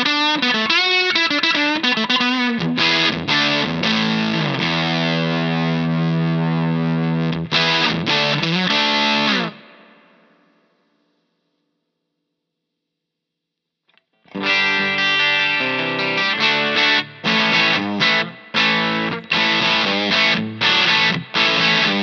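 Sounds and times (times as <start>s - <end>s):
overdriven electric guitar: 0.0s - 11.4s, 13.9s - 22.0s.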